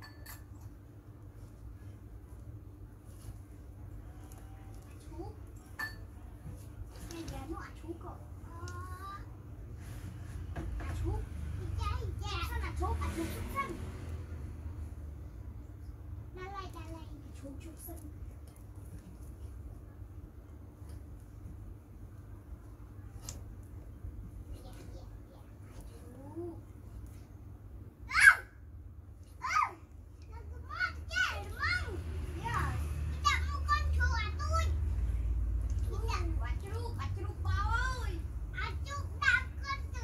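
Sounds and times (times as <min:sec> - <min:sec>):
low steady hum: 0:00.0 - 0:40.0
children talking and playing: 0:03.7 - 0:20.8, 0:21.5 - 0:27.1, 0:27.9 - 0:40.0
child calling and babbling: 0:08.4 - 0:09.4, 0:29.4 - 0:34.8.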